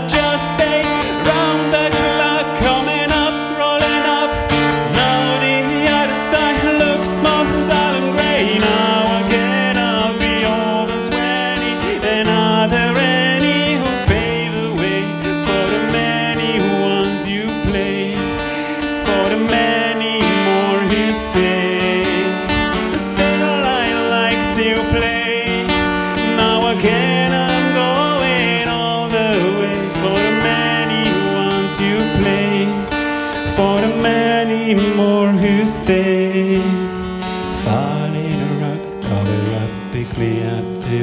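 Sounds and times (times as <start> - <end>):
acoustic guitar strumming: 0.0 - 41.0
person singing: 0.0 - 41.0.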